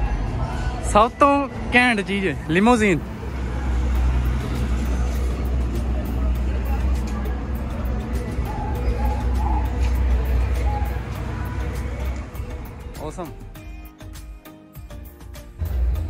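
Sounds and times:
distant voices: 0:00.0 - 0:13.6
faint music: 0:00.0 - 0:16.0.

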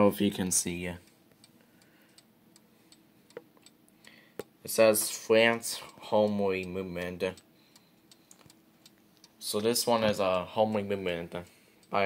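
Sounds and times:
clock ticking: 0:01.0 - 0:12.0.

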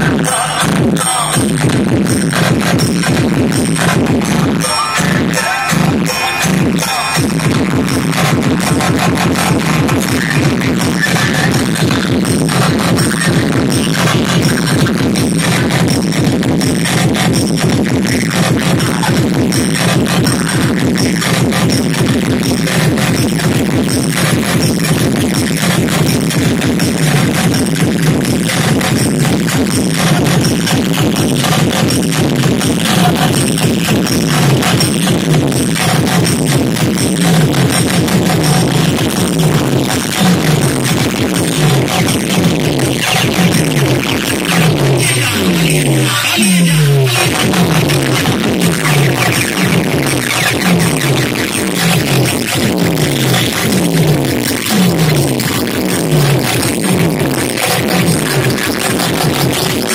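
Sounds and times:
bass line sliding downward: 0:00.0 - 0:59.9
loud electronic dance music: 0:00.0 - 0:59.9.

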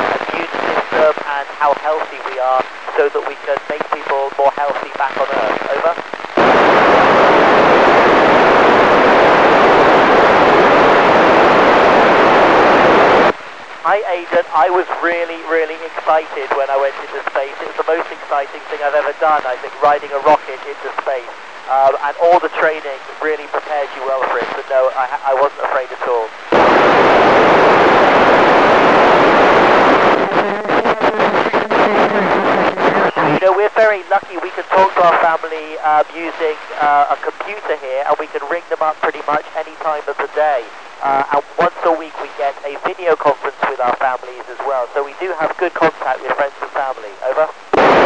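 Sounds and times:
choppy radio crackling: 0:00.0 - 0:48.0
radio static hiss: 0:00.0 - 0:48.0.

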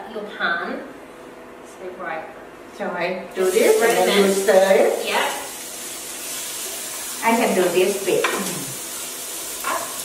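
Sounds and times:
onions sizzling in a pot: 0:03.3 - 0:10.0.

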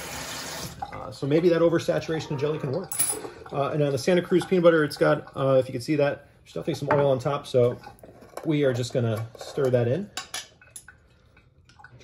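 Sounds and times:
faint scraping stirring: 0:01.8 - 0:11.9
metal utensil clinking jar: 0:02.7 - 0:03.3.

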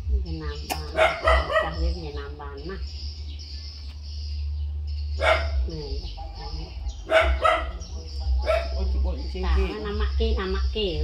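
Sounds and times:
steady low hum: 0:00.0 - 0:11.0
puppy barking and yelping: 0:00.9 - 0:01.9, 0:05.2 - 0:05.6, 0:07.0 - 0:08.8.

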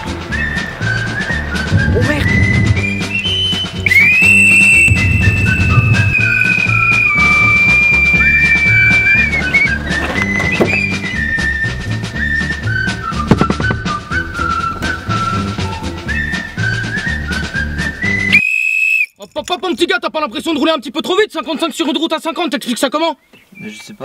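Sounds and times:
police whistle blast: 0:00.3 - 0:11.8, 0:12.4 - 0:19.2.

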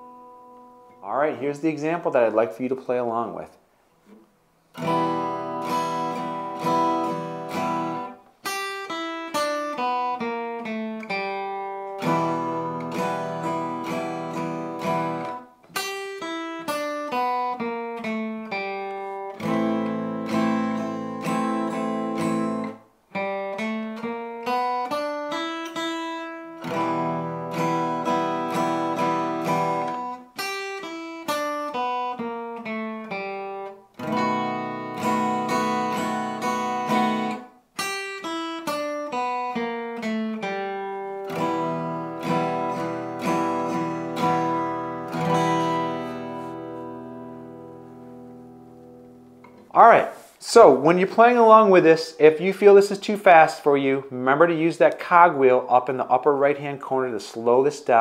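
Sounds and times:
acoustic guitar strummed chords: 0:00.0 - 0:03.4, 0:04.0 - 0:58.0
acoustic guitar single-note runs: 0:04.8 - 0:30.8, 0:31.5 - 0:50.2.

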